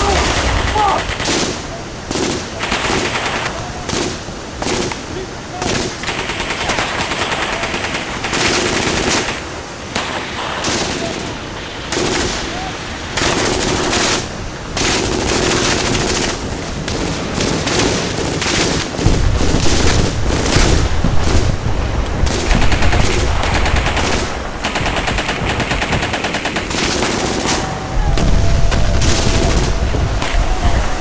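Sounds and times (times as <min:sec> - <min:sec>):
automatic gunfire burst: 0:00.0 - 0:05.0, 0:05.6 - 0:09.4, 0:22.2 - 0:27.8
machine-gun and rifle fire: 0:00.0 - 0:05.0, 0:05.6 - 0:12.5, 0:13.2 - 0:21.6, 0:22.2 - 0:30.9
deep rumble: 0:27.2 - 0:31.0.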